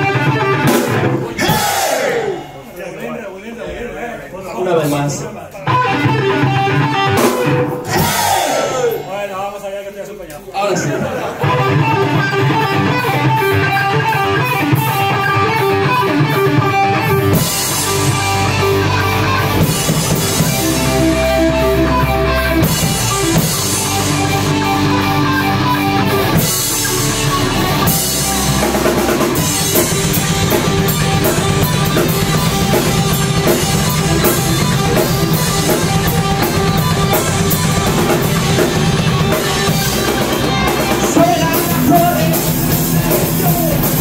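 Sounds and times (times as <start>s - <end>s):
bass guitar: 0.0s - 2.6s, 5.6s - 9.1s, 10.8s - 44.0s
driving drum beat: 0.0s - 2.7s, 5.8s - 9.7s, 11.5s - 44.0s
distorted electric guitars: 0.0s - 2.8s, 5.6s - 9.4s, 10.8s - 44.0s.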